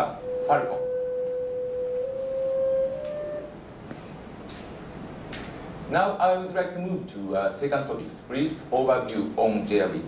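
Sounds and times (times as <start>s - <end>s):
pure steady tone: 0.0s - 4.0s.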